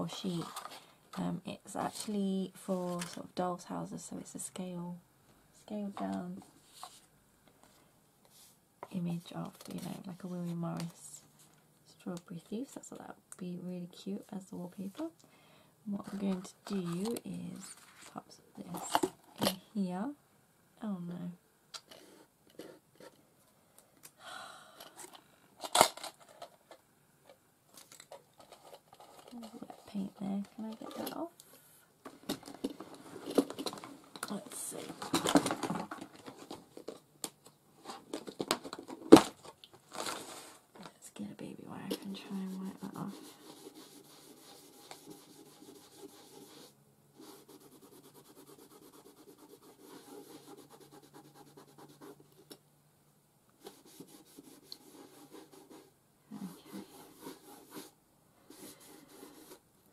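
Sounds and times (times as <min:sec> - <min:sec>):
paper rustling and scraping: 0:27.7 - 0:31.2, 0:37.8 - 0:40.7, 0:53.6 - 0:59.6.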